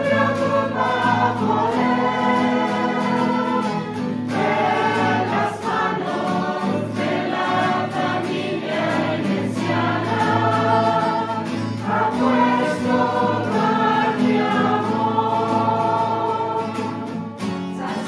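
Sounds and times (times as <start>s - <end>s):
guitar: 0.0s - 18.0s
mixed choir singing a hymn: 0.0s - 18.0s.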